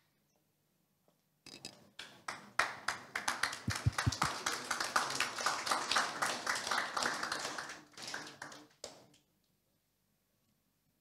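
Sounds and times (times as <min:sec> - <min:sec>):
small crowd clapping: 0:02.0 - 0:09.3.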